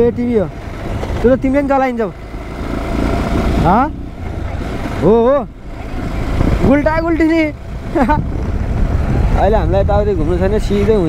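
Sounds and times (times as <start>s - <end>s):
motorcycle engine running: 0.0s - 11.0s
wind noise on microphone: 3.0s - 11.0s.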